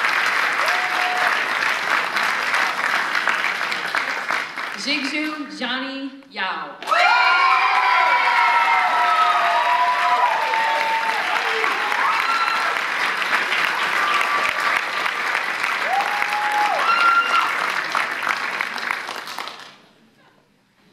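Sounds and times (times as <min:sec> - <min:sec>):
audience applauding: 0:00.0 - 0:04.9, 0:06.8 - 0:19.9
shouts and whoops: 0:00.6 - 0:01.4, 0:06.8 - 0:12.8, 0:15.8 - 0:17.6.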